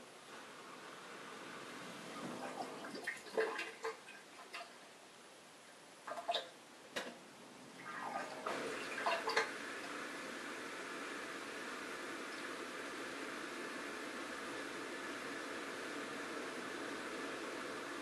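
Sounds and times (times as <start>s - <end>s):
dishwasher drain pump: 0.3s - 4.8s, 7.8s - 18.0s
water gurgling and sloshing: 1.8s - 4.8s, 7.8s - 10.2s.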